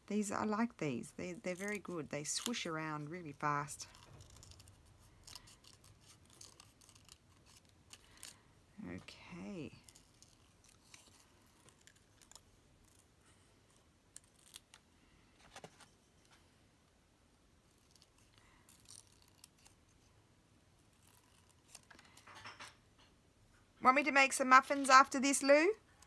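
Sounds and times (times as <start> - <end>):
scissors snipping paper: 1.3 - 8.4.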